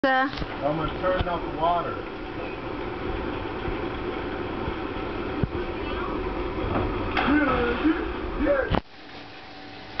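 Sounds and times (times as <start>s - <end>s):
water rushing: 0.6s - 9.5s.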